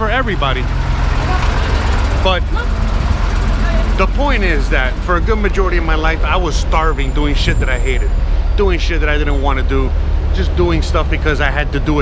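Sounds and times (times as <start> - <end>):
large vehicle engine running: 0.0 - 12.0
street traffic: 0.0 - 12.0.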